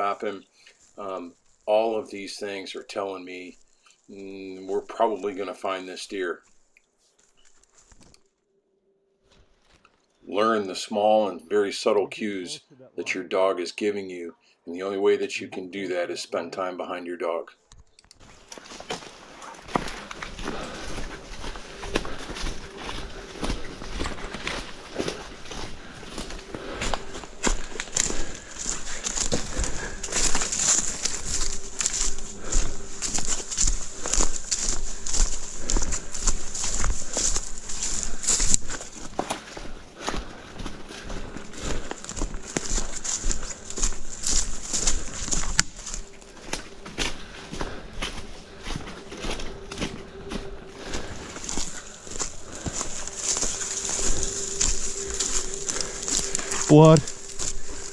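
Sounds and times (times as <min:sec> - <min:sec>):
footsteps crunching through leaves: 0:00.0 - 0:08.2, 0:09.3 - 0:10.2, 0:18.2 - 0:57.9
branches swishing: 0:18.2 - 0:39.8, 0:41.7 - 0:57.9.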